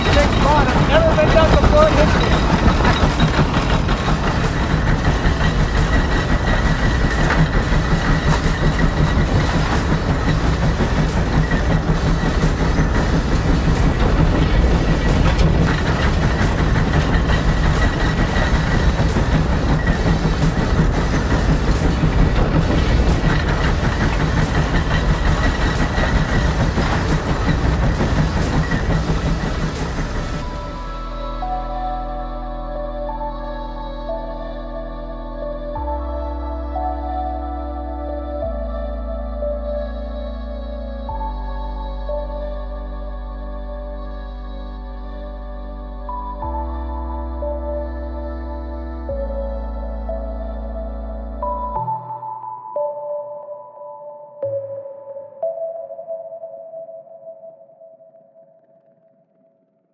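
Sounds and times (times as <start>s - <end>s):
rhythmic steam exhaust beat: 0.0s - 42.8s
low rumble: 0.0s - 51.7s.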